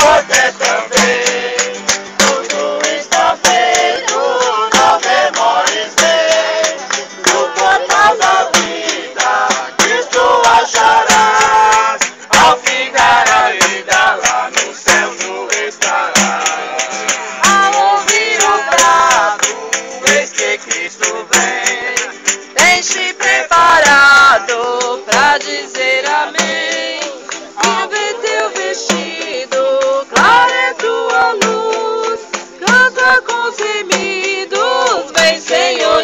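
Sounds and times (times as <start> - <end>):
acoustic guitar: 0.0 - 36.0
group singing worship song: 0.0 - 36.0
steady percussive beat: 0.0 - 36.0.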